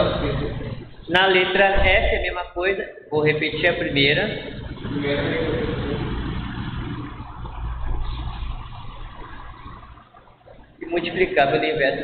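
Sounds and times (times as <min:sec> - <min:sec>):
low rumbling noise: 0:00.0 - 0:03.6.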